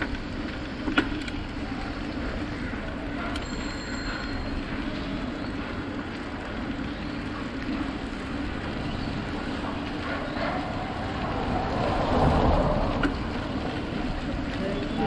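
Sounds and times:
bicycle road rumble: 0:00.0 - 0:15.0.

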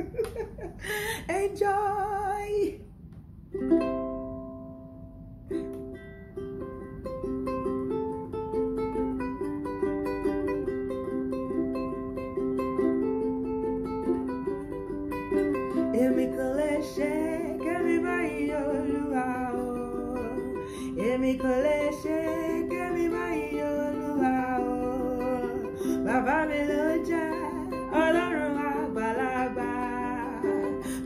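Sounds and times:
woman singing: 0:01.1 - 0:02.9, 0:15.7 - 0:31.0
ukulele plucked chords: 0:03.2 - 0:31.0.

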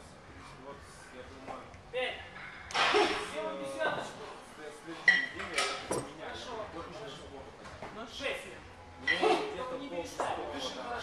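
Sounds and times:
kettlebells clanking: 0:05.1 - 0:06.2.

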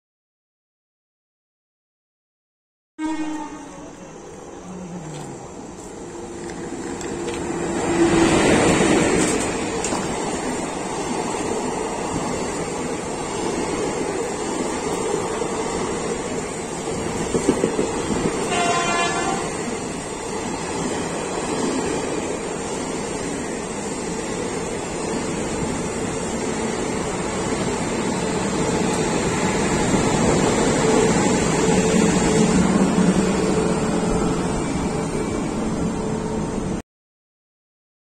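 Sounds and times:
train wheels rumbling on track: 0:03.2 - 0:36.8.

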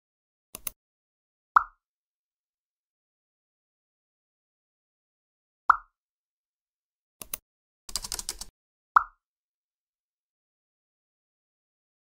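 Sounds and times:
dry clicks: 0:07.2 - 0:08.5.

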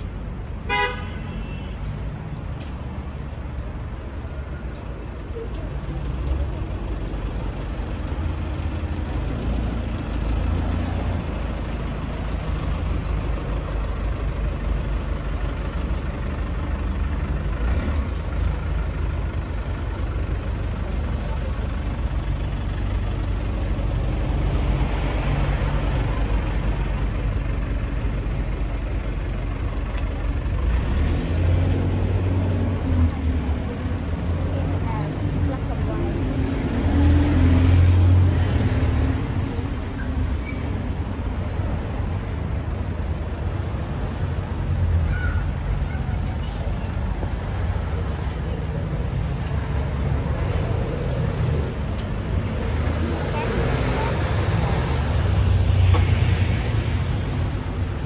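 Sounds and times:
road traffic passing: 0:00.0 - 0:58.0.

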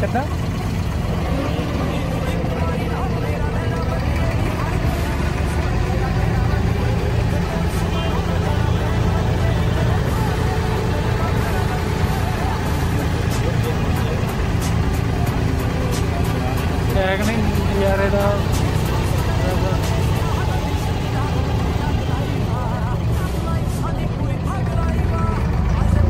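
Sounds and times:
boat engine droning: 0:00.0 - 0:26.0.

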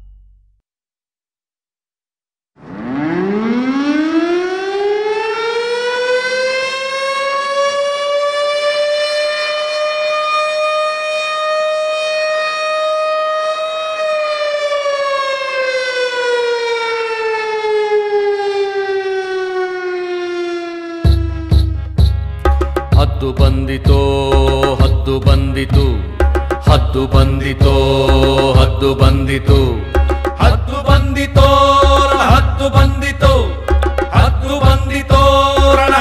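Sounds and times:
siren wailing: 0:02.6 - 0:22.0.

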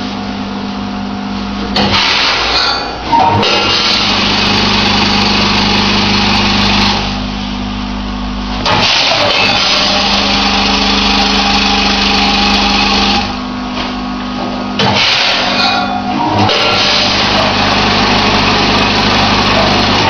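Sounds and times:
machine electric hum: 0:00.0 - 0:20.0.

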